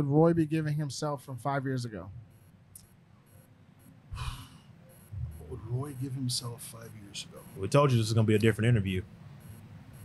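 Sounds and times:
man breathing into microphone: 4.1 - 4.7.

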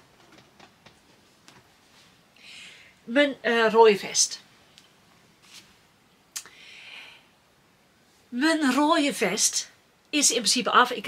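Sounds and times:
faint clicks and rustles: 0.0 - 2.2.

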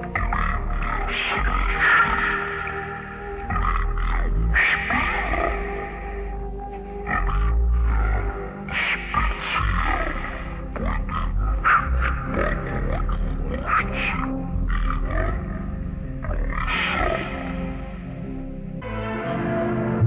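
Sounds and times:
animal-like growls and grunts: 0.0 - 18.1
commercial soundtrack music: 0.0 - 20.0.

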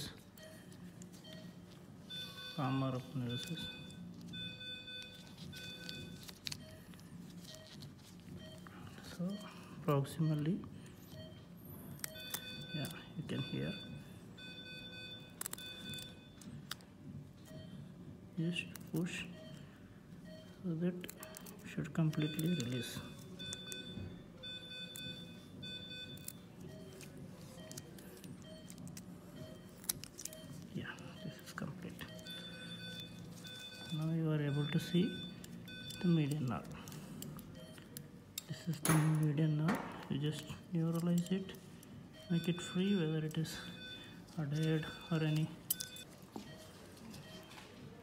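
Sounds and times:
faint electronic beeps: 0.0 - 38.8, 40.2 - 48.0
surgical instruments clicking: 25.8 - 39.4, 40.0 - 41.9, 44.5 - 46.1.

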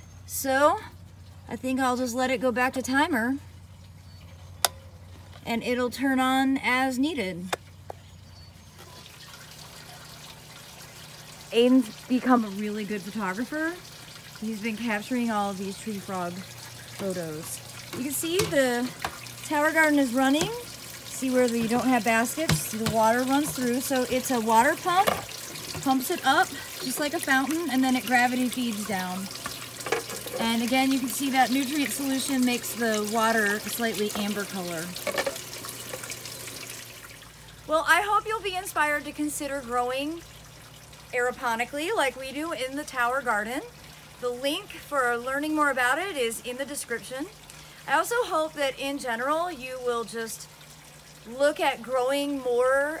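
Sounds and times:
water trickling: 0.0 - 53.0.

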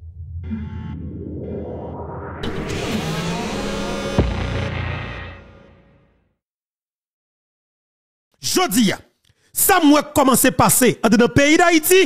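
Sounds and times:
rising whoosh: 0.0 - 6.1
synth tone pulses: 0.0 - 6.2
low electronic drone: 0.0 - 6.3.

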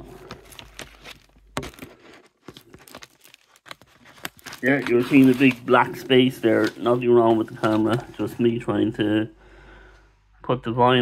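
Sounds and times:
record sliding into sleeve: 4.2 - 8.4.

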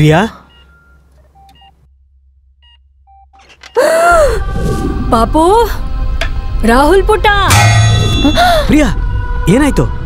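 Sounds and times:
patient monitor beeps: 0.4 - 1.8
low rumble: 4.2 - 10.0.

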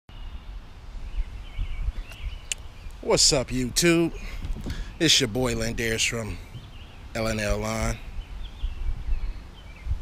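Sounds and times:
low rumble on microphone: 0.2 - 10.0
faint bird chirps: 4.0 - 10.0.

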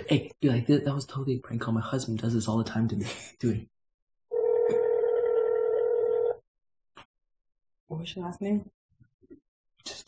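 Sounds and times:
telephone ringing tone: 4.3 - 6.4.

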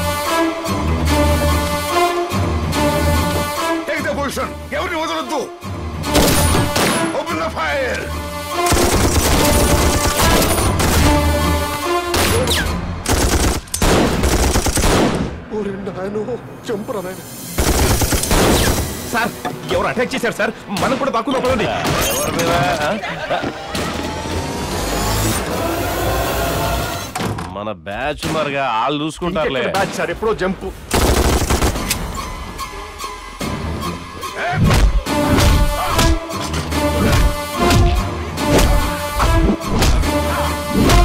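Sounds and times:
background music: 0.0 - 41.0
automatic gunfire: 8.7 - 10.5, 13.1 - 15.3, 17.6 - 18.9, 30.9 - 31.9.

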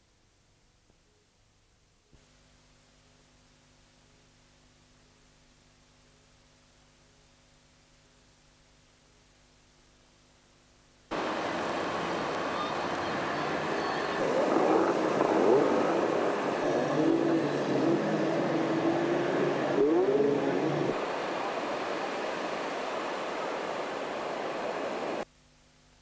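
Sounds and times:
outboard motors revving: 11.1 - 21.0
surf noise: 11.1 - 25.3.

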